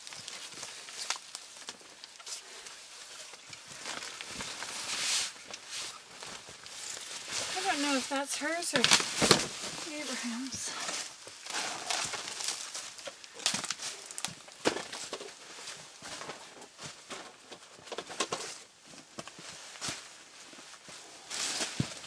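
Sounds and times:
plastic bags rustling: 0.0 - 22.0.

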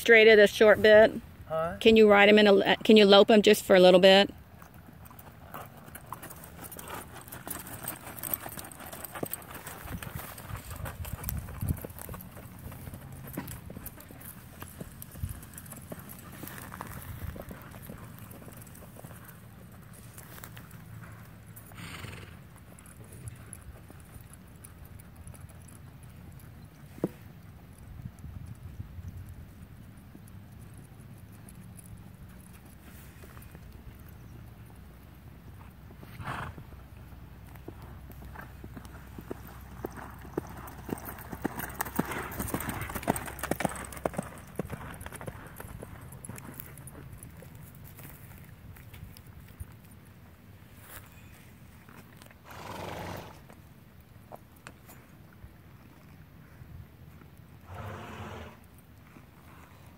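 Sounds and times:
horse hoofbeats on dirt: 1.8 - 59.9.

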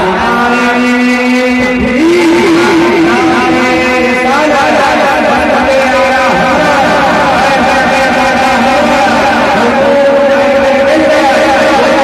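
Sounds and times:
man singing through loudspeaker: 0.0 - 12.0.

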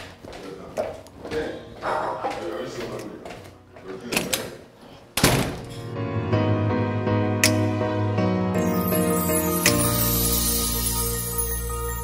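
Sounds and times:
background music sustained notes: 5.6 - 12.0.

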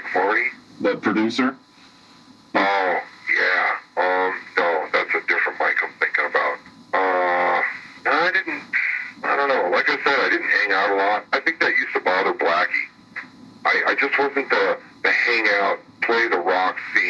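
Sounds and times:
man talking: 0.0 - 1.6, 2.6 - 12.9, 13.7 - 17.0.

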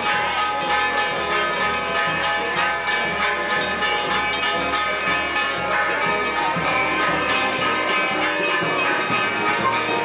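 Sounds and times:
church bells ringing a peal: 0.0 - 10.0.

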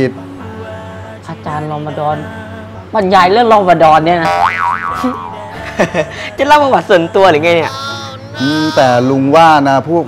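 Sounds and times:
background music: 0.0 - 10.0
comic boing sound effect: 4.2 - 5.8.

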